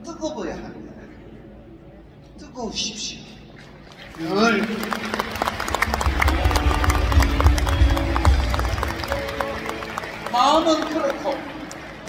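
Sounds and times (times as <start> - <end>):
audience clapping: 3.9 - 12.0
music playing: 5.0 - 12.0.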